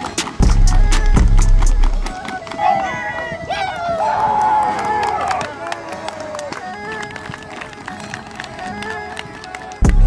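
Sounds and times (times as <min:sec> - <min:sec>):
music with heavy bass beat: 0:00.4 - 0:02.1.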